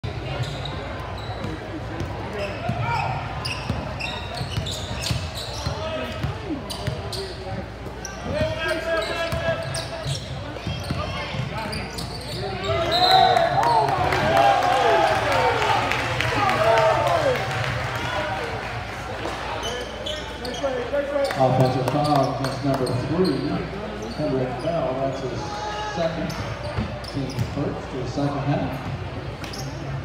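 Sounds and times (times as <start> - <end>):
shoe squeaks: 0.3 - 1.6, 2.3 - 6.0, 6.6 - 7.4, 8.0 - 13.3, 19.6 - 21.4, 22.0 - 25.3, 26.2 - 27.6, 29.4 - 29.9.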